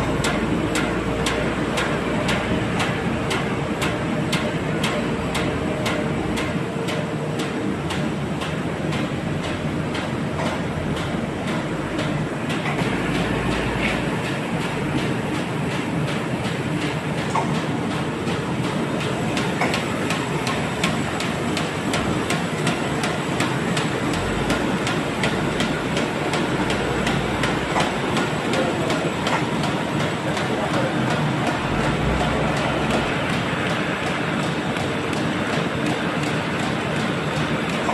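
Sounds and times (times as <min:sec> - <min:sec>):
paper sheeting machine running: 0:00.0 - 0:37.9.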